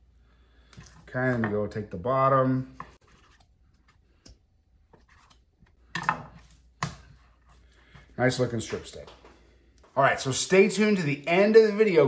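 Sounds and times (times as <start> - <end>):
knife scraping on cutting board: 2.7 - 3.5.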